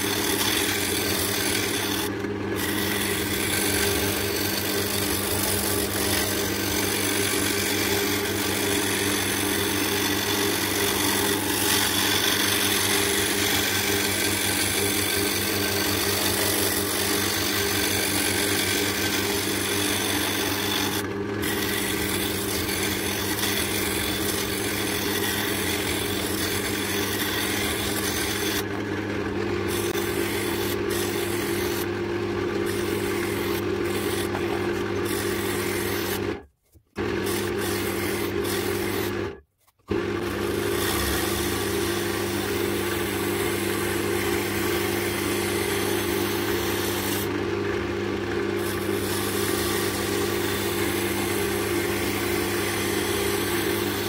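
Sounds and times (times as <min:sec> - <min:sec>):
gouge rasping on spinning wood: 0:00.0 - 0:36.4, 0:37.0 - 0:39.4, 0:40.0 - 0:47.4, 0:48.2 - 0:54.0
lathe motor humming: 0:00.0 - 0:36.4, 0:37.0 - 0:54.0.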